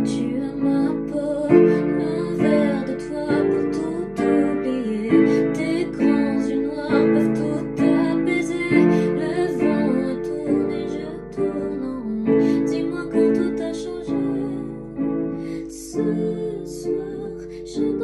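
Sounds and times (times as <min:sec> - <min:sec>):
digital piano chords: 0:00.0 - 0:18.0
woman singing a slow ballad: 0:00.0 - 0:18.0.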